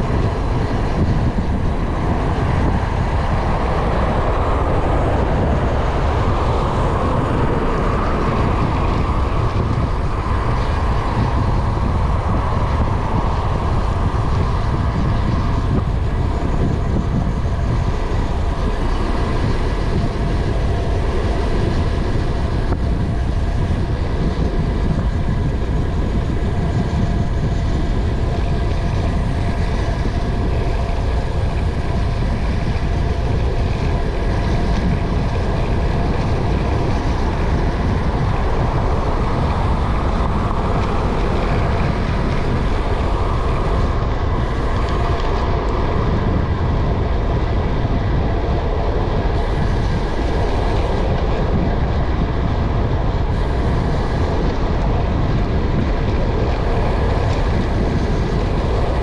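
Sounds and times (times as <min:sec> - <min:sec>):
road noise: 0:00.0 - 0:59.0
wind rumble on microphone: 0:00.0 - 0:59.0.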